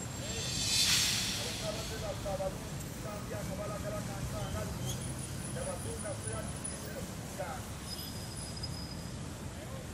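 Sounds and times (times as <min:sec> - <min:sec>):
vehicle engines rumbling: 0:00.0 - 0:09.9.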